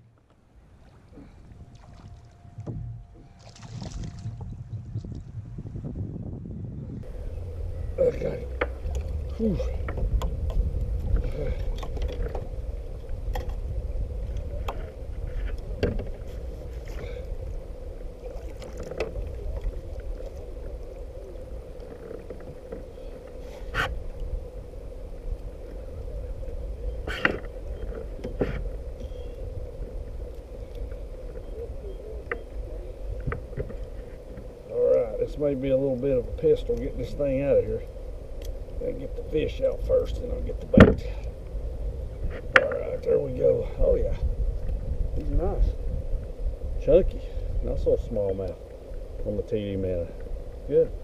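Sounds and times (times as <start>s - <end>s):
faint steady hum: 0.0s - 51.0s
wind and water rumble: 0.0s - 51.0s.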